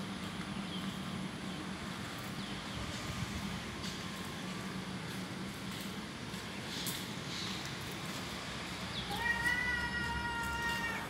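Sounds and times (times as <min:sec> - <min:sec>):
cat meowing: 0:09.1 - 0:11.0.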